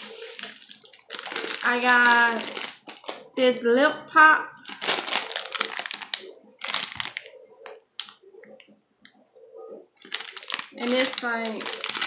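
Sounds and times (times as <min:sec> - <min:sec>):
plastic bag crackling: 0:00.0 - 0:03.4, 0:04.6 - 0:08.2, 0:10.0 - 0:12.0.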